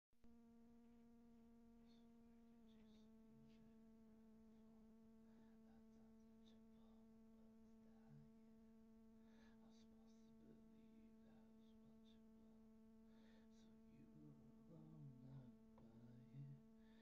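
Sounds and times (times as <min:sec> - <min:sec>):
faint low buzzing drone: 0:00.0 - 0:17.0.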